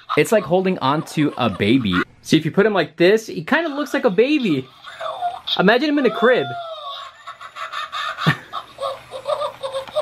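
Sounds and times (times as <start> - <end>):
toy electronic voice laughing: 0.0 - 2.1, 3.5 - 10.0.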